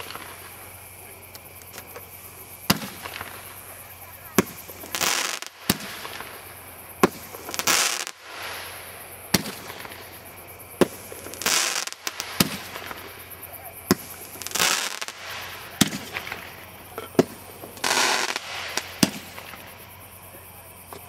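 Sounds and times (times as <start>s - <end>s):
firework bangs: 0.0s - 20.1s
firework hissing rushes: 0.0s - 20.4s.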